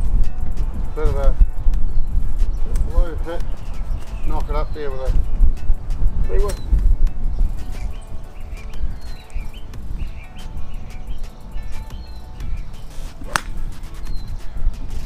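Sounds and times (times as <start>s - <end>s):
golf club striking ball: 12.9s - 14.1s.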